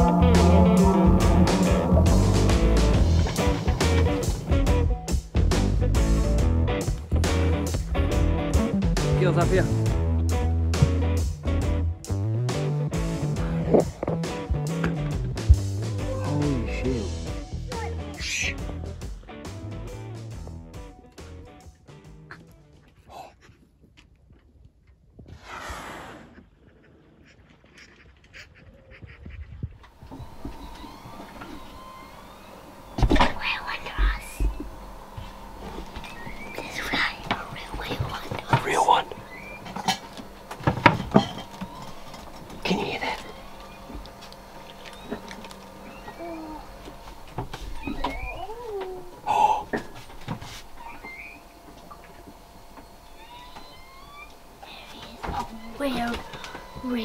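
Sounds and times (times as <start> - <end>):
whale calls: 0.0 - 4.0, 43.2 - 47.1, 47.7 - 49.9
knocks and thumps: 40.6 - 41.8.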